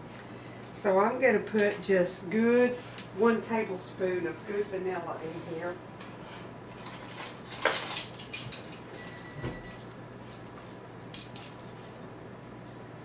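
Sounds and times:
metal measuring spoons jangling: 6.8s - 9.8s, 10.4s - 11.8s.

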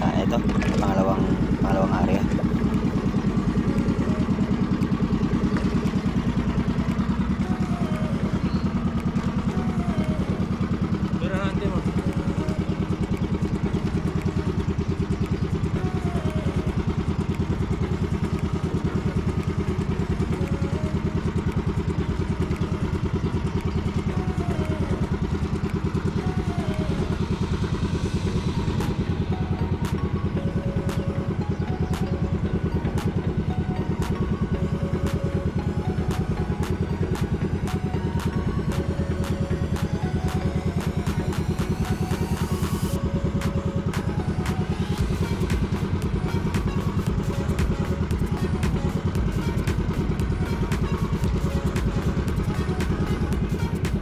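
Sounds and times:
boat engine running: 0.0s - 54.0s.

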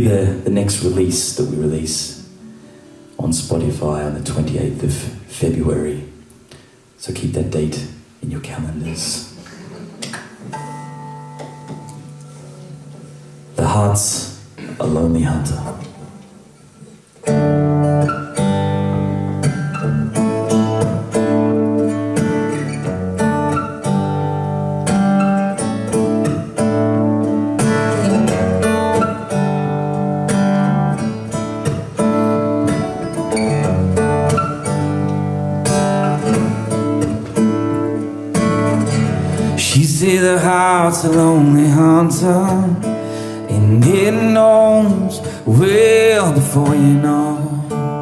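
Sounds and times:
acoustic guitar: 0.0s - 48.0s
clean electric guitar: 15.6s - 48.0s.

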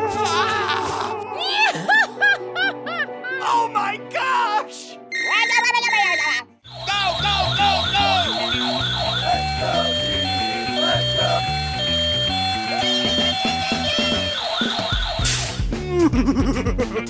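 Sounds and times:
fire engine siren: 6.7s - 15.4s
background music with steady beat: 6.7s - 17.0s.

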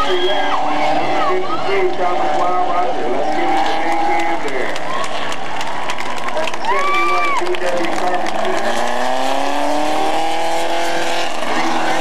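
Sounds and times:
people's voices: 0.0s - 12.0s
race car engine running: 0.0s - 12.0s.

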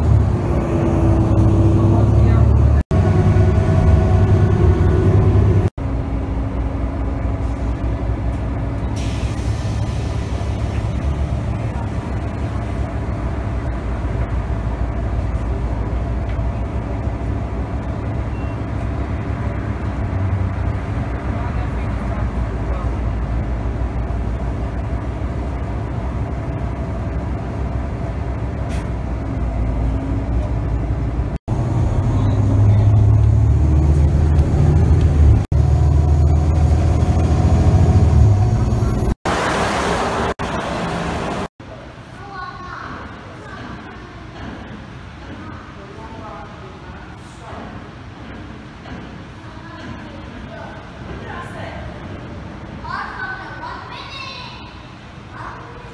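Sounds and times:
bus engine and road hum: 0.0s - 55.9s
freeway traffic noise: 0.0s - 55.9s
people talking: 1.6s - 2.8s, 32.0s - 33.2s, 41.7s - 44.7s, 49.4s - 52.1s, 52.7s - 55.9s.

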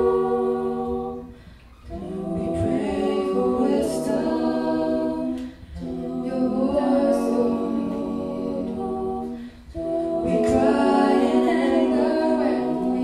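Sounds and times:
a cappella choir singing: 0.0s - 13.0s.

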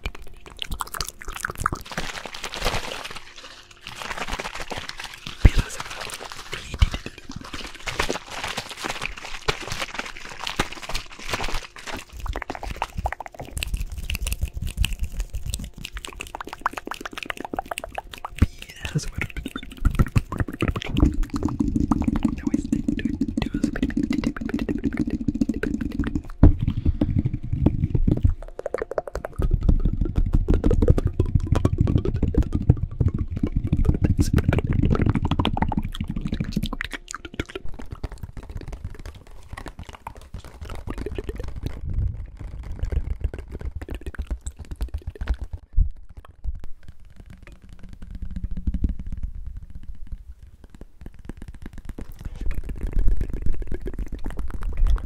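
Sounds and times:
hands rubbing and tapping microphone: 3.9s - 55.0s.

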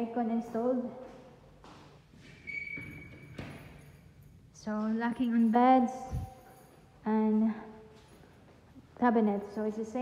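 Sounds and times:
high-pitched squeak: 2.5s - 3.4s.

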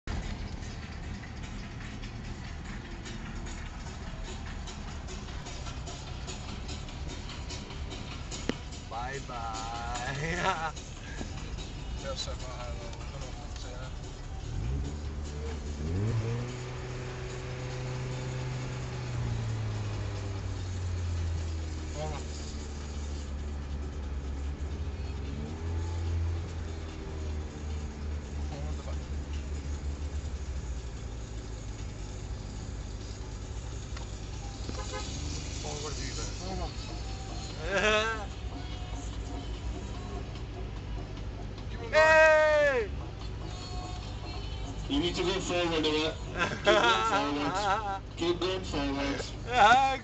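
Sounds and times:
car engine running at low revs: 0.0s - 41.9s.

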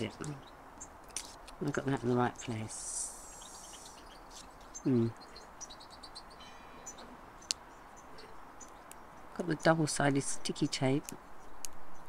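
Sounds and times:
birdsong chirps and trill: 0.0s - 12.0s.

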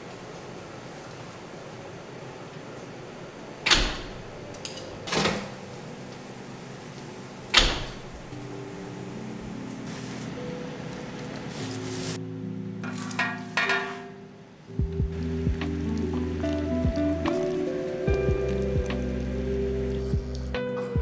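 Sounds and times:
soft background music: 3.2s - 21.0s.

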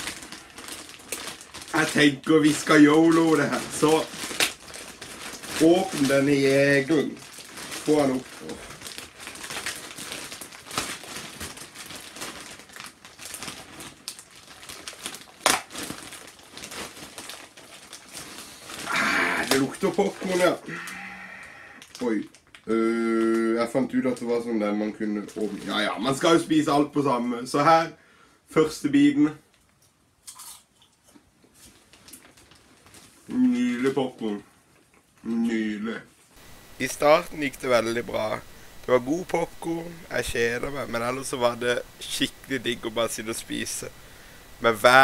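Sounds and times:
chewing and crunching popcorn: 0.0s - 26.2s, 29.7s - 35.3s
plastic bag crinkling: 0.0s - 26.5s, 31.5s - 34.4s, 36.4s - 45.0s.

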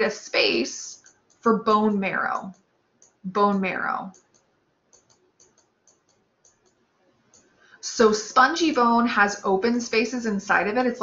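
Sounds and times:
stylus tapping on tablet screen: 4.1s - 7.5s.

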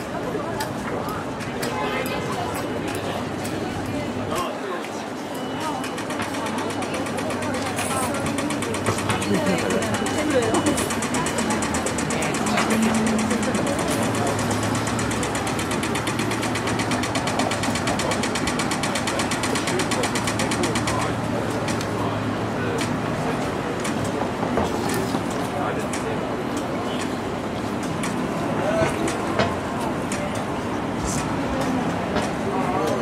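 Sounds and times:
crowd chatter: 0.0s - 33.0s
traffic: 0.0s - 33.0s
crossing signal ticking rapidly: 5.4s - 21.2s.

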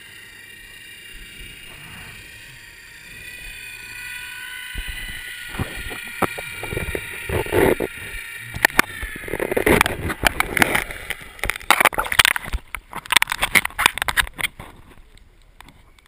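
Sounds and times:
faint underwater whine: 0.0s - 16.0s
water sloshing and bubbling: 4.8s - 14.9s.

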